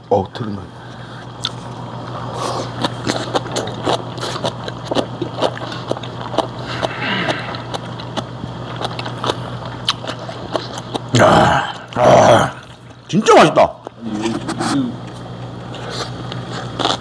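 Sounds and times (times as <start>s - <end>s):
low steady hum: 0.0s - 17.0s
chewing food: 1.4s - 13.1s, 15.0s - 17.0s.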